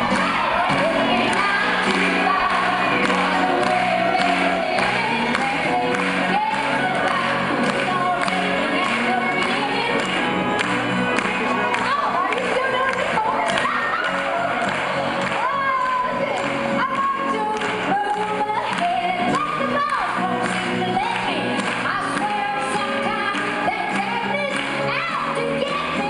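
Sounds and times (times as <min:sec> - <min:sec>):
woman singing into a microphone: 0:00.0 - 0:10.2, 0:11.8 - 0:14.2, 0:15.4 - 0:26.0
crowd noise: 0:00.0 - 0:26.0
music: 0:00.0 - 0:26.0.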